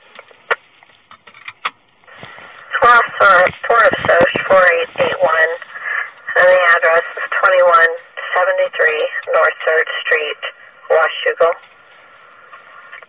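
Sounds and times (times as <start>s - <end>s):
radio hiss: 2.0s - 13.0s
voice over two-way radio: 2.6s - 11.6s.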